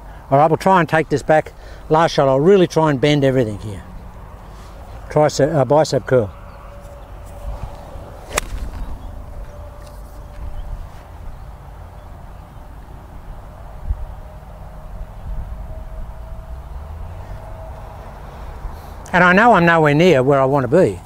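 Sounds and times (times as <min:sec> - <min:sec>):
wind rumbling on microphone: 0:06.3 - 0:19.0
golf club striking ball: 0:07.7 - 0:10.0.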